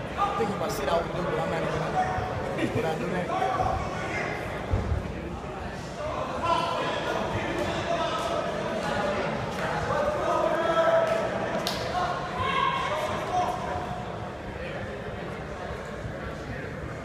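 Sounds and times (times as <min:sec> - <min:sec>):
crowd shouting and cheering: 0:01.7 - 0:14.4.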